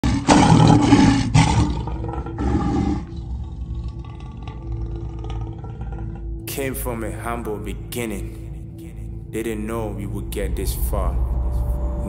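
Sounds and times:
lion roaring: 0:00.0 - 0:06.5.

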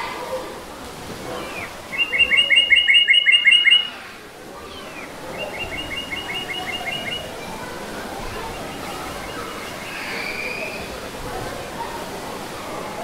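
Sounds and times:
bird singing trills: 0:01.6 - 0:03.9, 0:05.0 - 0:07.3.

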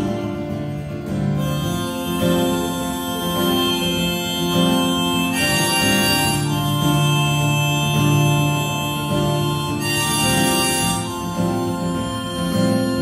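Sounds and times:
keyboard sustained chords: 0:00.0 - 0:13.0.

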